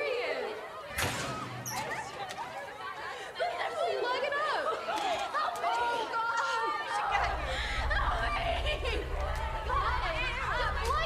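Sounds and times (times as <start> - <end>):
girls calling and chattering: 0.0 - 11.0.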